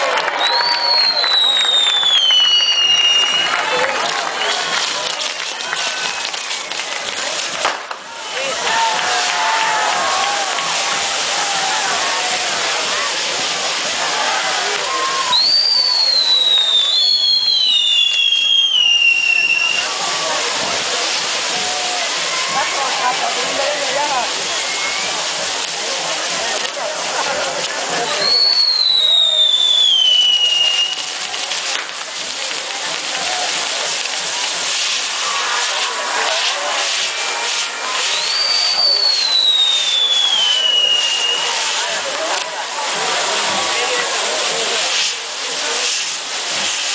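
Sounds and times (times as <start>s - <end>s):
high falling firework whistles: 0.0s - 23.0s, 24.0s - 25.4s, 28.0s - 42.3s
firework whistle falling in pitch: 0.2s - 3.6s, 14.8s - 20.0s, 28.1s - 31.2s, 34.8s - 41.8s
fizzing hiss of spark wheels: 0.4s - 46.9s.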